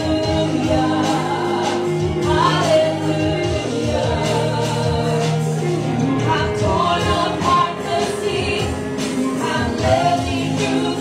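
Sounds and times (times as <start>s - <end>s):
worship band playing and singing: 0.0s - 11.0s.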